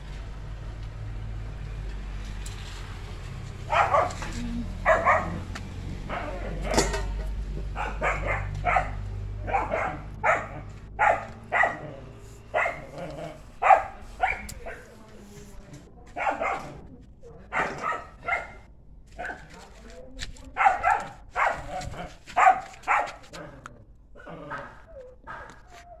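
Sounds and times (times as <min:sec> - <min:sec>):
dog barking: 0:03.7 - 0:06.9, 0:07.7 - 0:15.1, 0:16.1 - 0:16.9, 0:17.5 - 0:19.6, 0:20.5 - 0:23.6, 0:24.4 - 0:26.0.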